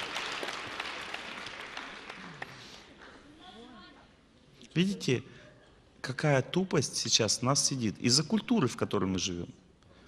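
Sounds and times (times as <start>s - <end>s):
audience applause: 0.0s - 2.9s.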